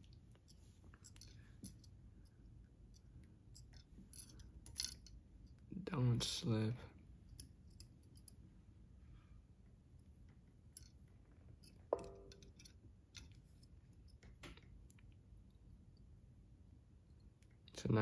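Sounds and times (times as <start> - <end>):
small clicks of handled tools: 0.0 - 5.6, 11.6 - 15.1.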